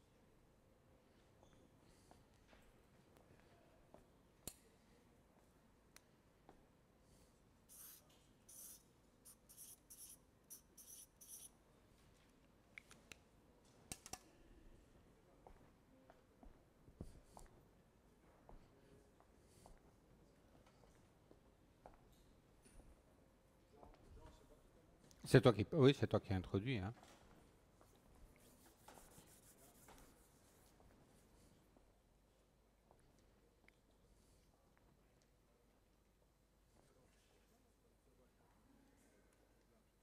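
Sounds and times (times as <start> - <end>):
scratchy rustling strokes: 28.3 - 30.8.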